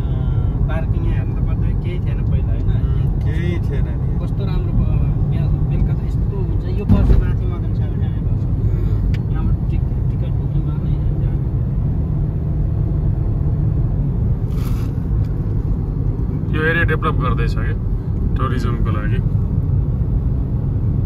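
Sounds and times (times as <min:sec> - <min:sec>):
car cabin road rumble: 0:00.0 - 0:21.0
loud thump: 0:06.9 - 0:07.4.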